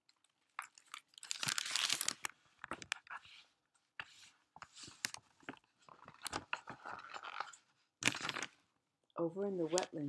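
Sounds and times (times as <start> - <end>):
paper pages rustling: 0.6 - 8.6.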